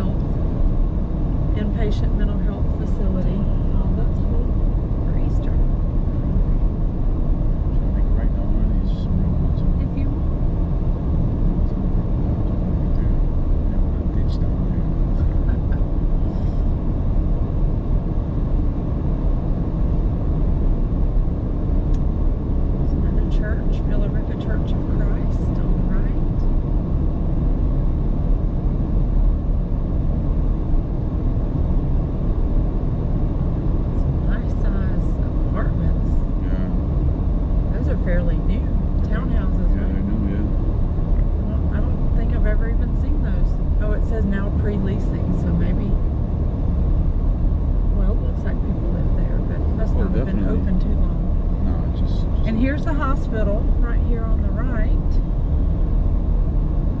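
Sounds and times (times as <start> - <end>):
car driving rumble: 0.0 - 57.0.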